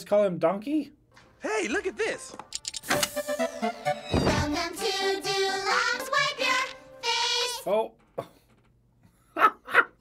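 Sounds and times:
man laughing: 9.3s - 10.0s.

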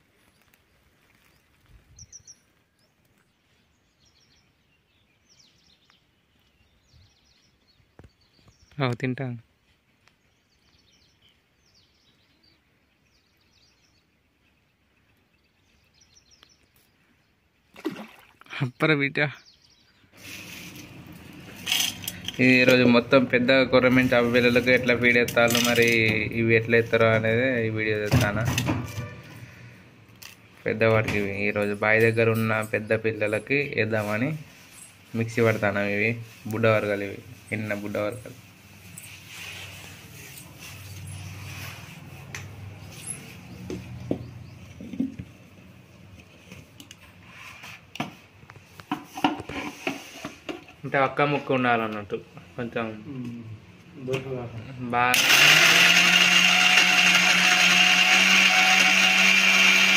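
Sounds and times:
dried fish scraping in metal jar: 20.2s - 23.0s.

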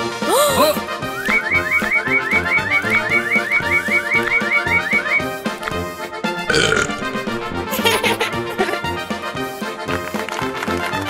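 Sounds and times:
cartoon background music: 0.0s - 11.0s
cartoon burp: 6.5s - 7.7s.

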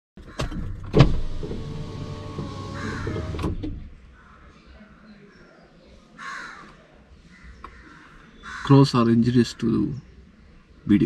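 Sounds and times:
sharp thumps in car: 0.2s - 3.9s
power window motor whirring: 0.8s - 3.8s
crows cawing: 2.7s - 3.4s, 4.1s - 4.6s, 6.2s - 8.8s.

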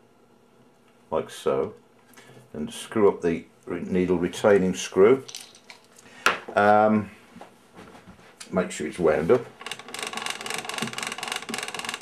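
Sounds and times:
gramophone crank ratchet clicking: 9.6s - 12.0s.

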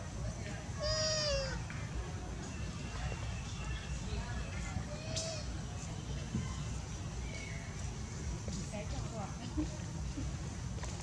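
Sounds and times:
infant monkey cooing: 0.8s - 1.6s.

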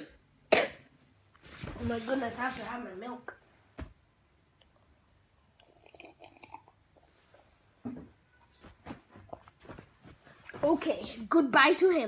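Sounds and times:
boy coughing: 0.0s - 0.9s
boy speaking: 1.8s - 3.4s, 10.5s - 12.0s.

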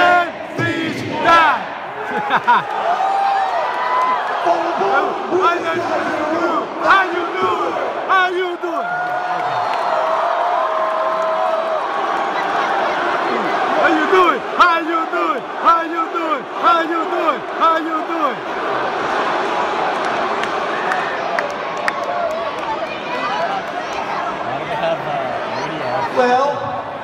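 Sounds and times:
crowd shouting rhythmic chants: 0.0s - 2.6s, 4.4s - 8.5s
arena crowd cheering: 0.0s - 27.0s.

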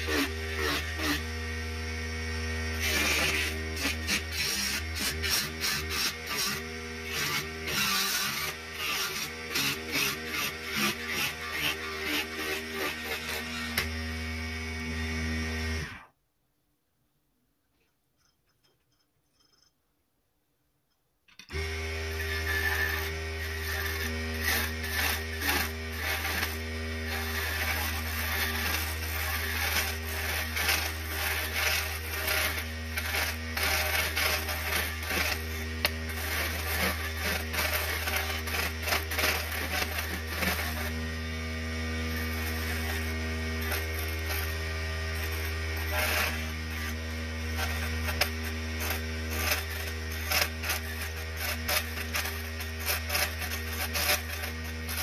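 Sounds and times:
chisel scraping spinning wood: 0.0s - 16.0s, 21.5s - 55.0s
lathe motor humming: 21.5s - 55.0s.

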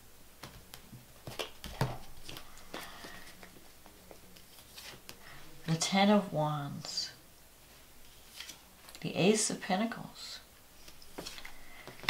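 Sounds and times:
cards rustling: 1.2s - 5.2s, 8.1s - 9.0s, 10.8s - 12.0s.

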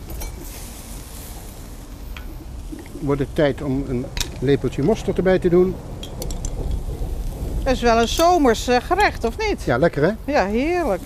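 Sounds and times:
even hiss: 0.0s - 11.0s
road traffic rumble: 0.0s - 11.0s.

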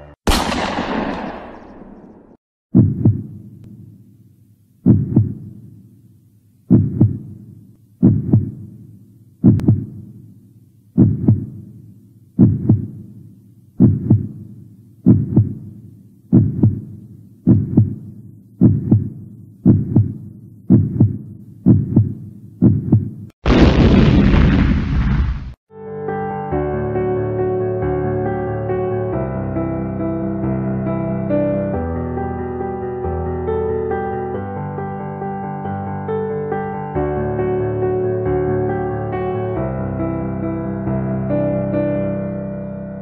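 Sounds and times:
heartbeat thuds: 2.7s - 3.4s, 4.8s - 5.5s, 6.7s - 7.4s, 8.0s - 8.7s, 9.4s - 10.0s, 11.0s - 11.6s, 12.4s - 13.0s, 13.8s - 23.3s
loud burst of noise: 23.4s - 25.6s.

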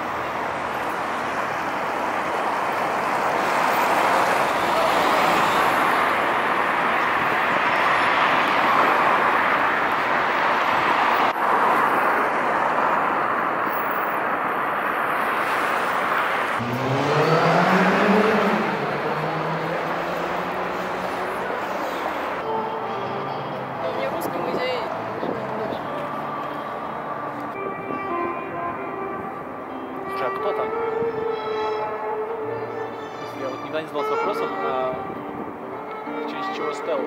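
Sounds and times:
road traffic rushing: 0.0s - 37.0s
vehicle engine accelerating: 16.4s - 22.5s.

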